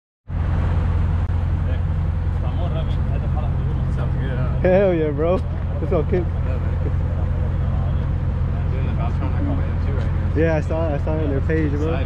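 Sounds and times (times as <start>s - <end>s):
car engine idling: 0.3s - 12.0s.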